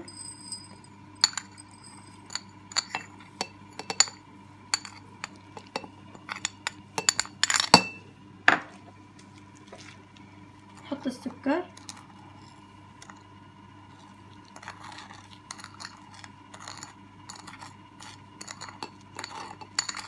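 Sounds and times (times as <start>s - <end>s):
coffee granules clinking on glass: 0.0s - 8.0s, 14.6s - 20.0s.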